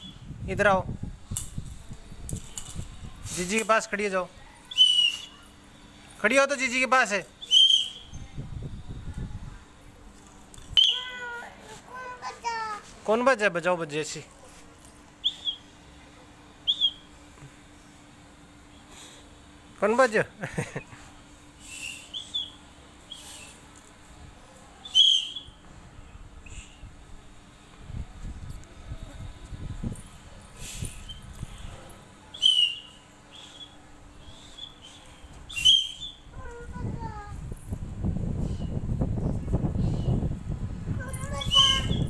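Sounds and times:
toy whistle toots: 4.7 - 5.4, 7.4 - 8.1, 10.8 - 11.2, 32.4 - 33.8, 35.6 - 36.2
toy whistle toot: 10.8 - 11.1.

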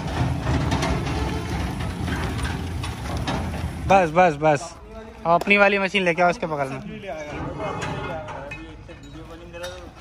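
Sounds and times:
metal frame clattering: 0.0 - 4.2, 7.1 - 10.0
iron wheels rumbling on dirt: 0.0 - 10.0.

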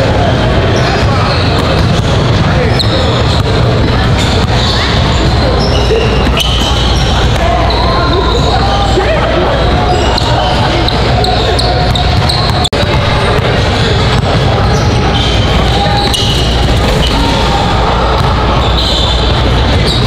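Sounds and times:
voices echoing in a hall: 0.0 - 20.0.

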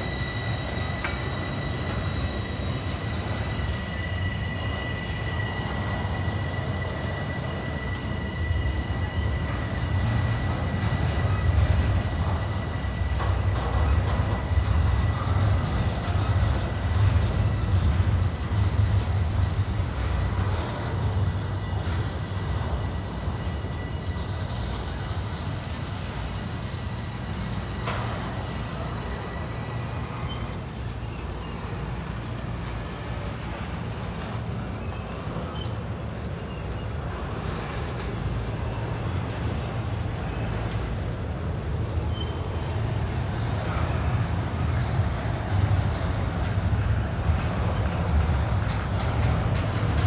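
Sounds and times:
train wheels rumbling on rail: 0.0 - 50.0.

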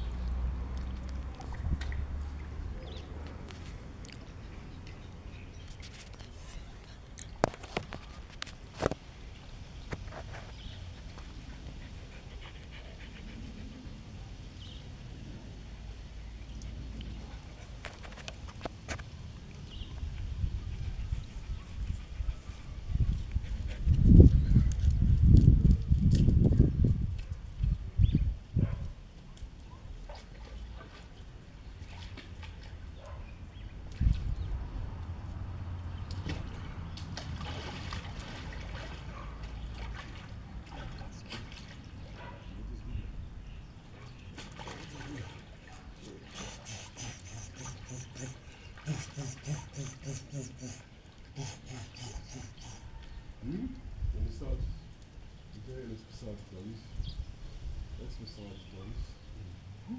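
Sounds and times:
pool water sloshing and splashing: 0.1 - 15.1, 29.1 - 42.5, 43.9 - 53.2.

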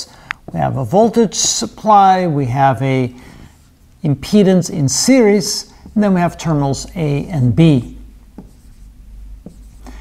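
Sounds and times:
marker pen drawing on whiteboard: 3.5 - 10.0.

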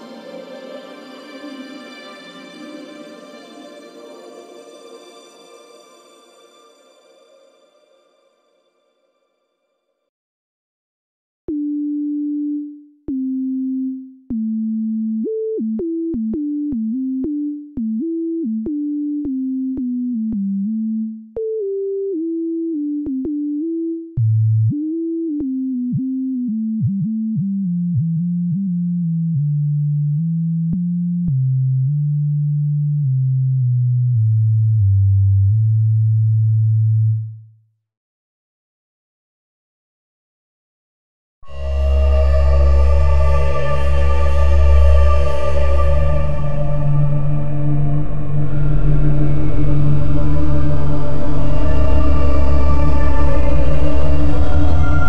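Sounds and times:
sine tone synth notes: 11.5 - 29.5, 41.5 - 55.0.

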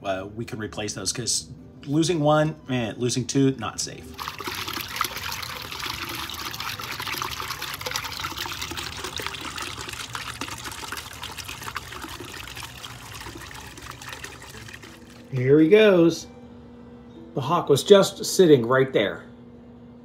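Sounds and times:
fountain water bubbling and splashing: 4.2 - 15.2.

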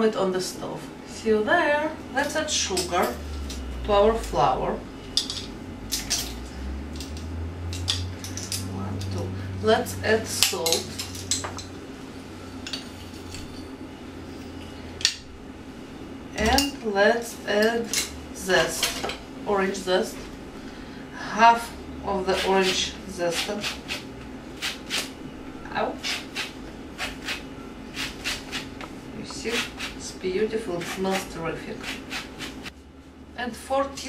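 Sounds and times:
person speaking: 8.6 - 10.9
peel scraping on a grater: 22.3 - 24.0, 26.0 - 28.7, 29.3 - 32.7.

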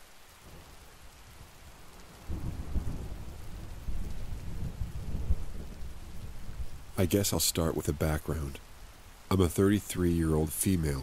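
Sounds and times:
steady rain: 0.0 - 11.0
rolling thunder: 2.2 - 7.0.

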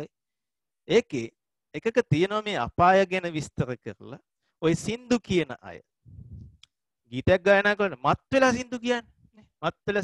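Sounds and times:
man speaking: 7.1 - 10.0.

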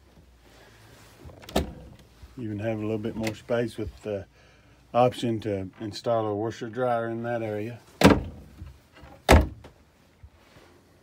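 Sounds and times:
wooden cabinet doors shutting: 8.0 - 9.7.

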